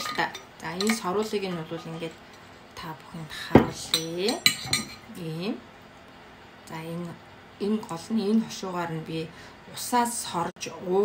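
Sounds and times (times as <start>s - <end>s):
woman talking: 0.0s - 2.2s, 2.8s - 5.7s, 6.6s - 11.0s.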